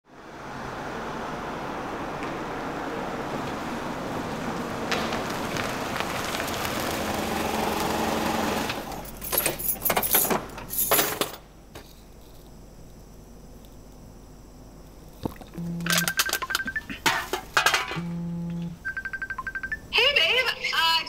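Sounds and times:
car engine approaching: 0.0 - 9.3
keys jangling: 8.9 - 11.4.

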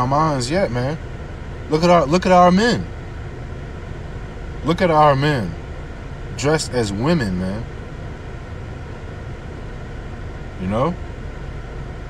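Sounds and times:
background hum and hiss: 0.0 - 12.0.

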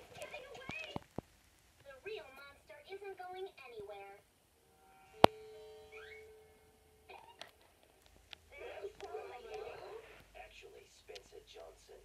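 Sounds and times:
voices: 0.0 - 1.1, 8.4 - 12.0
cartoon soundtrack on television: 0.0 - 12.0.

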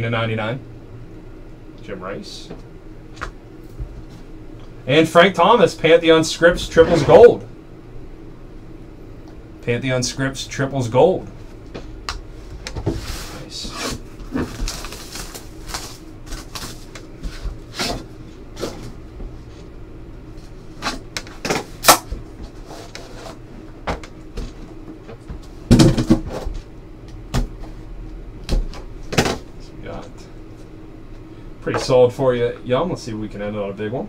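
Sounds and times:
card boxes knocking and clicking: 25.7 - 26.3.

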